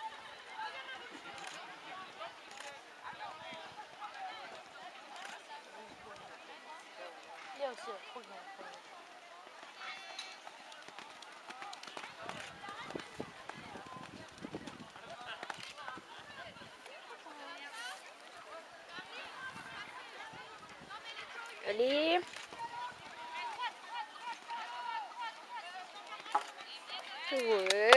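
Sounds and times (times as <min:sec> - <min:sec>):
indistinct talk of onlookers: 0:00.0 - 0:27.9.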